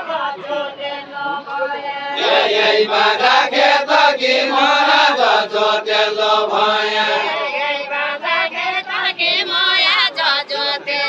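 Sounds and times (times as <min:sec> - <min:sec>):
group singing unaccompanied: 0:00.0 - 0:11.0.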